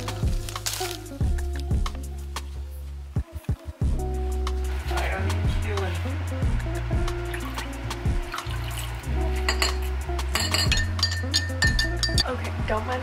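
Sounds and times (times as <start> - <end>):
background music with steady beat: 0.0 - 13.0
spoon clinking against glass: 9.4 - 12.3.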